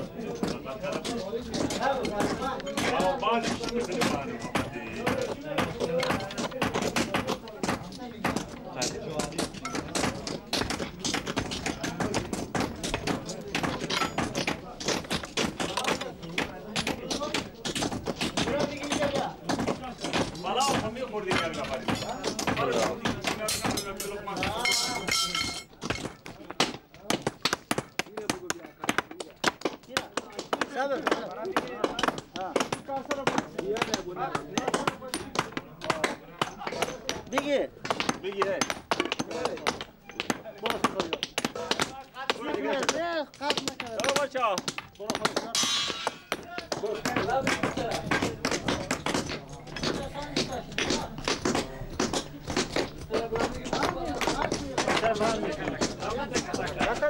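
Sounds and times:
metallic clang ringing: 24.6s - 25.7s, 45.6s - 46.4s.

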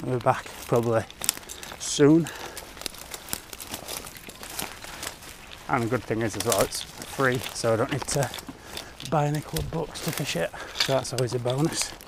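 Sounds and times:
footsteps through dry grass: 0.0s - 12.0s.

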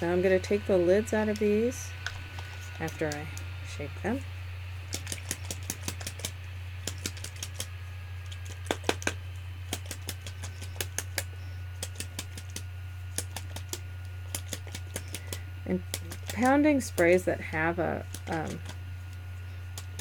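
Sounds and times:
low hum: 0.0s - 20.0s.

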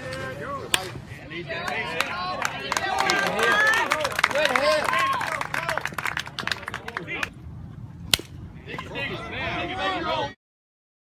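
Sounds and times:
sharp crack: 0.1s - 1.0s, 8.1s - 8.4s
scattered clapping: 1.6s - 7.3s.

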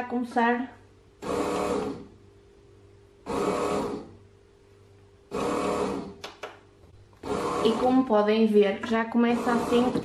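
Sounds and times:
faint steady hum: 0.0s - 10.0s
bread machine motor pulsing: 1.2s - 2.2s, 3.2s - 4.2s, 5.3s - 6.2s, 7.2s - 8.1s, 9.3s - 10.0s.

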